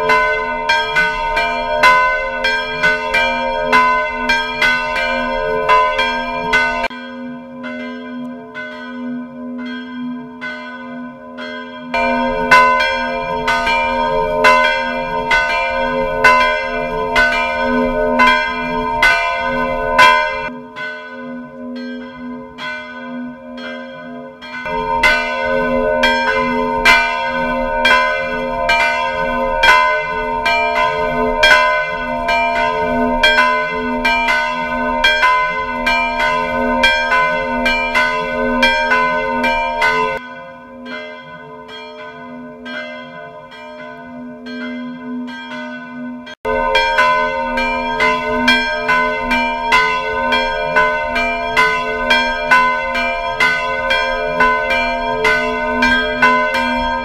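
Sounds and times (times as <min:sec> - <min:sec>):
church bells ringing: 0:00.0 - 0:57.0.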